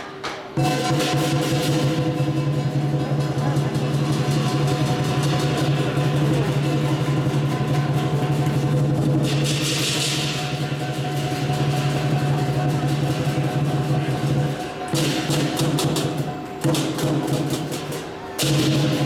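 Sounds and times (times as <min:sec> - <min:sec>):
cymbal crash: 0:00.6 - 0:19.0
large drum roll: 0:00.6 - 0:19.0.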